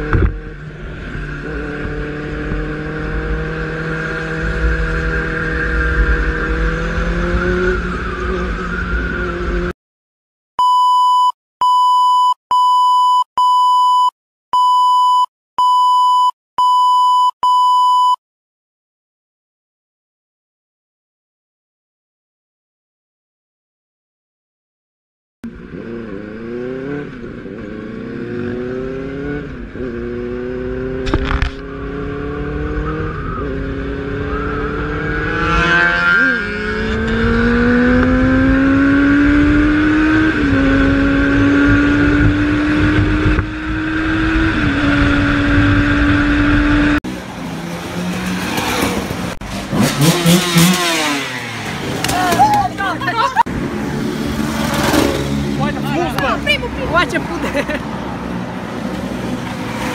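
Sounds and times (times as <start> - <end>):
motorcycle engine accelerating: 0.0 - 9.7, 25.4 - 59.9
motorcycles passing by: 25.5 - 59.9
voices: 52.0 - 53.5, 55.5 - 57.8.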